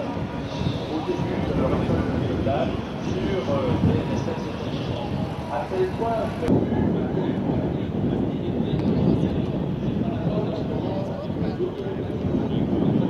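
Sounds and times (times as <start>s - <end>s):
aircraft rumble: 0.0s - 13.0s.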